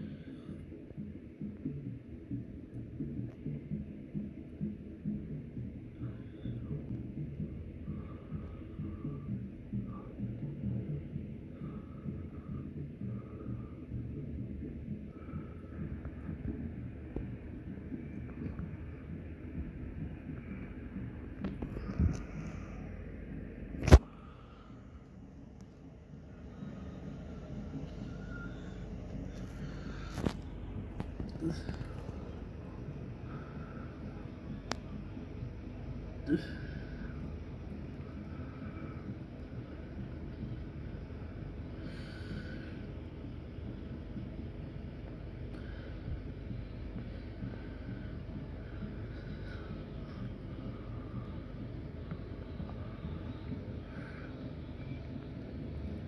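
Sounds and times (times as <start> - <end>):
faint scattered higher sounds: 0.0 - 56.0.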